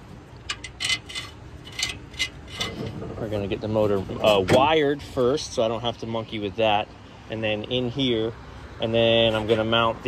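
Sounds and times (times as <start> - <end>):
metal parts clinking and scraping: 0.4 - 3.2.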